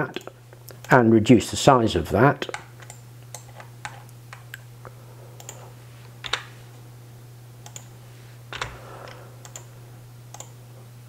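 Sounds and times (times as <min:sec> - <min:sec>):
faint steady hum: 0:00.0 - 0:11.0
keyboard and mouse clicks: 0:07.6 - 0:07.9, 0:08.5 - 0:09.7, 0:10.3 - 0:10.6.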